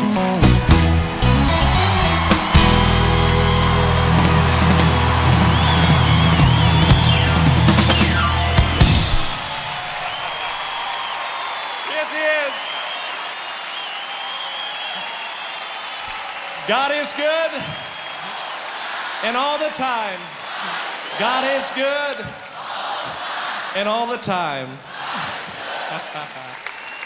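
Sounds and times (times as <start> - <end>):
audience applauding: 0.4 - 23.6, 25.0 - 27.0
voices calling out: 1.2 - 10.8, 16.6 - 23.8.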